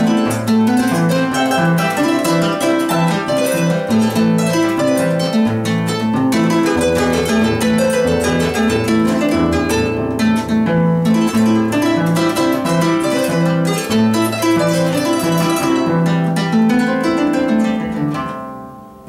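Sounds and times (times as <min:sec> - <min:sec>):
harp plucked melody: 0:00.0 - 0:19.0.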